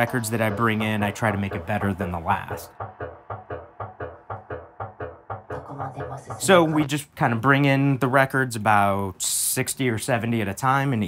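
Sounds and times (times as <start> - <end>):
background music short notes: 0.0 - 6.9.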